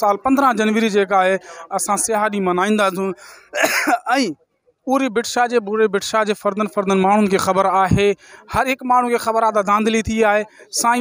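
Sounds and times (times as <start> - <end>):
man clearing his throat: 3.5 - 4.2.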